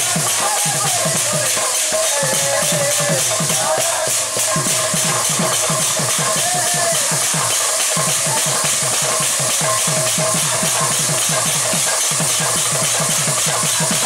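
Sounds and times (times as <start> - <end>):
hand drum playing fast rhythm: 0.0 - 14.0
steady high hiss: 0.0 - 14.0.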